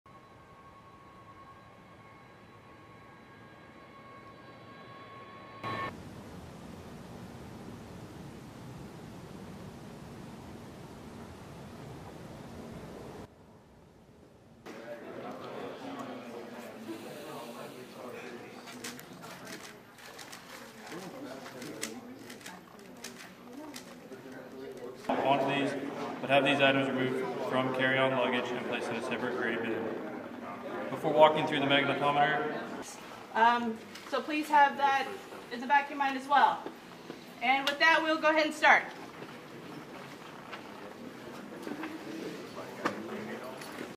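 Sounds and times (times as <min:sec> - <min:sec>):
high jet whine: 0:00.1 - 0:13.3
murmur of distant voices: 0:14.7 - 0:43.9.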